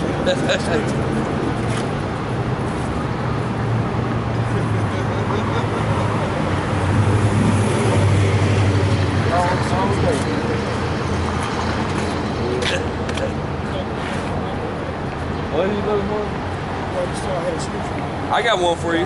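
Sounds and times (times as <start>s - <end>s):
street traffic: 0.0s - 19.0s.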